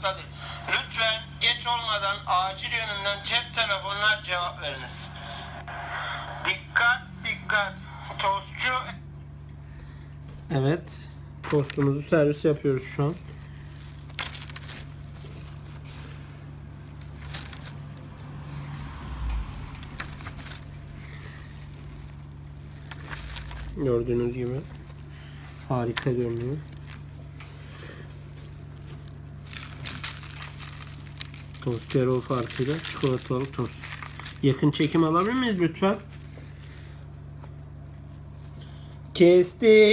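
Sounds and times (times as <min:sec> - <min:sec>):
steady low hum: 0:00.0 - 0:39.9.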